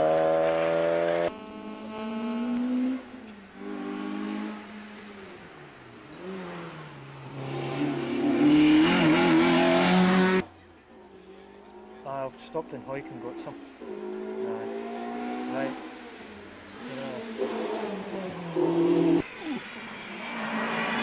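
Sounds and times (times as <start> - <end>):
rally car engine: 0.0 - 21.0.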